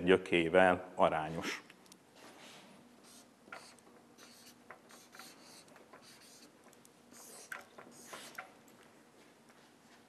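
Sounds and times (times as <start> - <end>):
marker pen scratching: 3.0 - 8.5.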